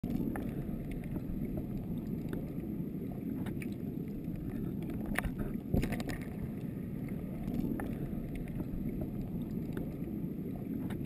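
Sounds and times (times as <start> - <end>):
underwater low rumble: 0.0 - 11.0.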